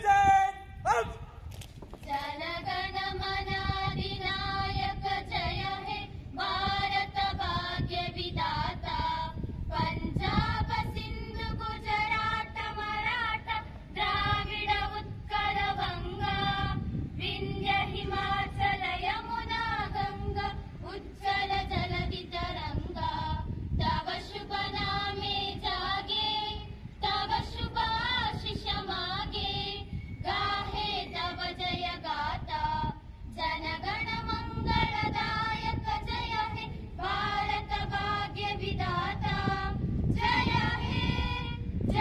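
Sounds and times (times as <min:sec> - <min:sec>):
children and women singing in unison: 0:02.1 - 0:42.0.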